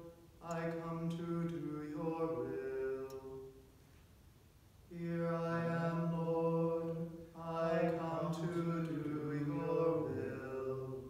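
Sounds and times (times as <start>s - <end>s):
man chanting psalm: 0.0s - 3.6s, 4.9s - 11.0s.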